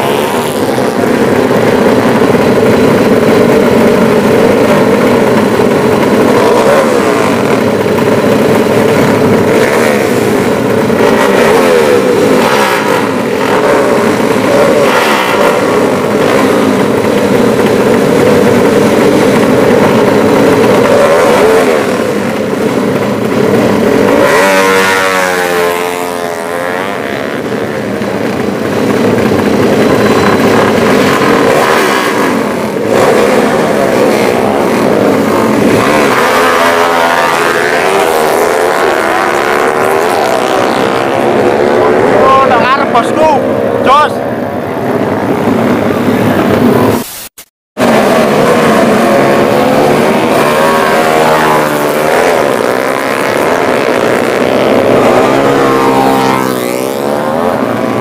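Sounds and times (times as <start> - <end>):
motorcycle engines revving: 0.0 - 58.0.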